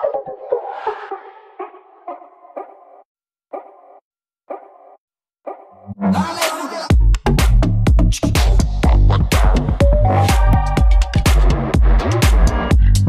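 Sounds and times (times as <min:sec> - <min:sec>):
house music with heavy bass: 0:06.1 - 0:13.0
pounding kick drum: 0:06.9 - 0:13.0.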